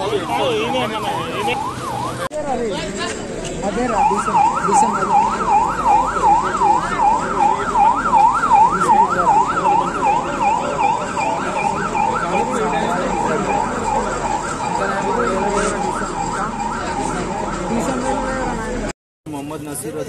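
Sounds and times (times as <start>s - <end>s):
emergency vehicle siren wailing: 0.0s - 18.9s
voices: 0.0s - 20.0s.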